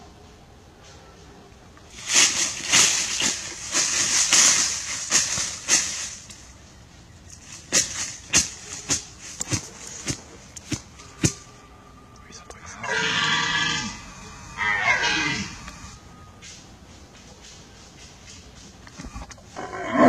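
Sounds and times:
rustling in dry leaves: 0.0s - 11.8s, 12.7s - 20.0s
sharp crunches: 7.3s - 11.5s.

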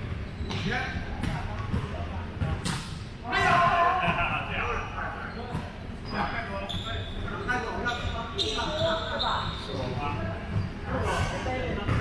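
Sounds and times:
players' voices in large hall: 0.0s - 12.0s.

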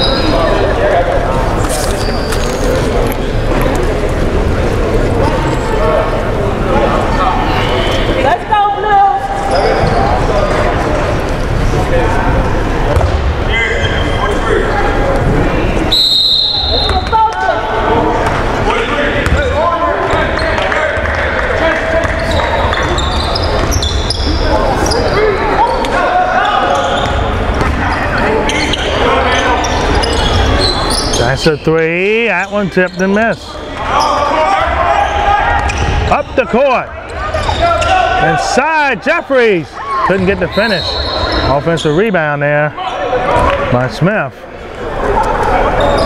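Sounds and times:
echoing voices in a gym: 0.0s - 46.0s.

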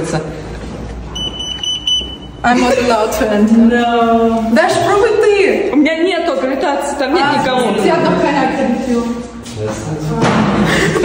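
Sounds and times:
card reader lock beep: 1.2s - 2.4s.

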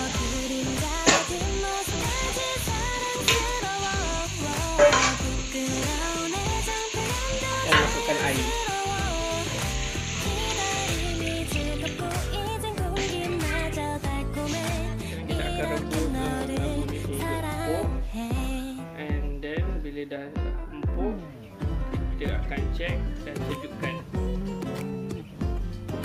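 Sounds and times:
food sizzling in a pot: 0.0s - 16.6s
background music: 0.0s - 26.0s.

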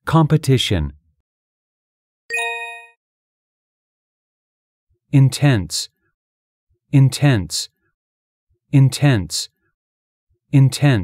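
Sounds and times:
bell-like ding: 2.3s - 3.0s.

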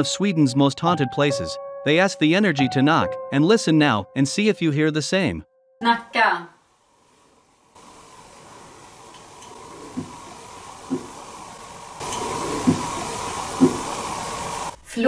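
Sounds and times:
faint hum: 6.6s - 14.8s
steady hiss: 6.7s - 14.8s
dull knocks: 12.4s - 12.9s, 13.6s - 13.9s.

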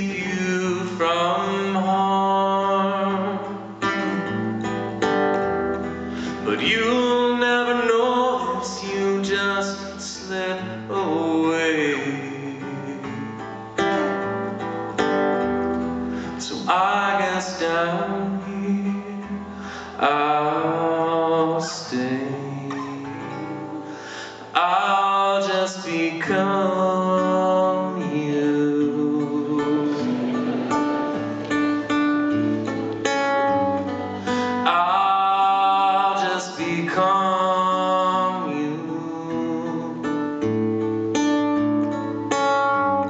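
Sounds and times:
person singing: 0.0s - 4.5s, 6.3s - 13.6s, 16.2s - 40.6s
acoustic guitar chords strummed: 0.0s - 43.0s.

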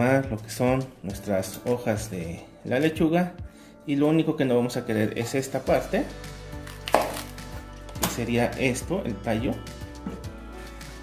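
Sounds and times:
knife striking cutting board: 6.8s - 7.3s.

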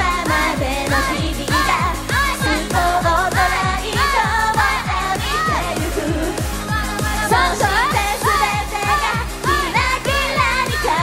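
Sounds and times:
backing track with drum beat: 0.0s - 11.0s
women singing pop song: 0.0s - 11.0s.

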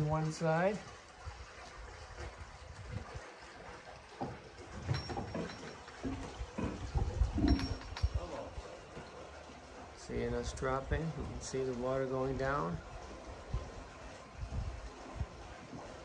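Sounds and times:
water rushing: 0.0s - 16.0s
low thumps and knocks: 4.1s - 8.2s.

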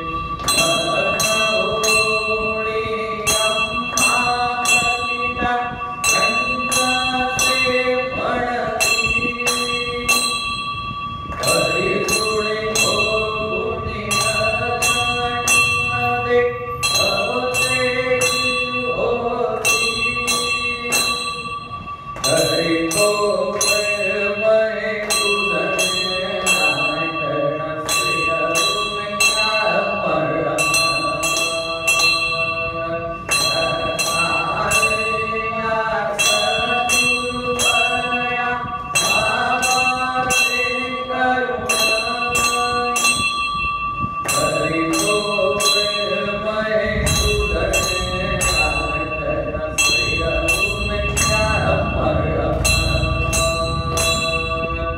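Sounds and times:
temple bell ringing: 0.0s - 54.9s.

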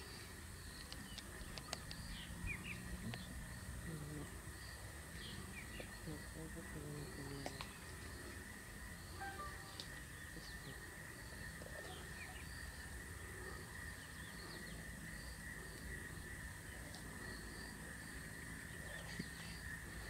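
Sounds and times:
high insect drone: 0.0s - 20.0s
bird calls: 5.1s - 20.0s
short chirps: 9.2s - 9.9s.

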